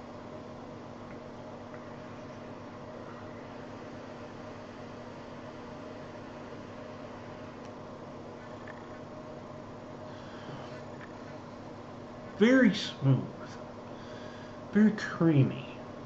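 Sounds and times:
faint hum: 0.0 - 16.0.

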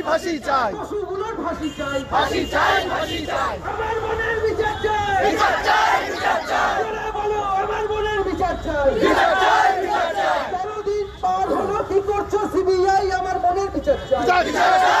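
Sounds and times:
crowd shouting slogans: 2.1 - 7.3, 9.0 - 10.6, 14.2 - 15.0.

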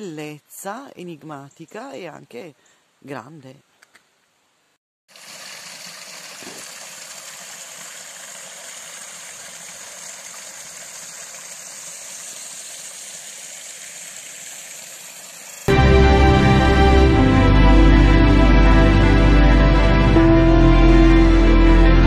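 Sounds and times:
brook running over rocks: 5.1 - 15.7
loud music: 15.7 - 22.0.

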